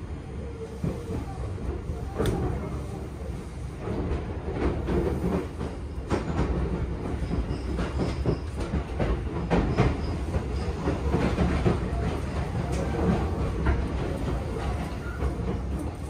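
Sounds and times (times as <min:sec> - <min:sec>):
train rumble from inside carriage: 0:00.0 - 0:16.0.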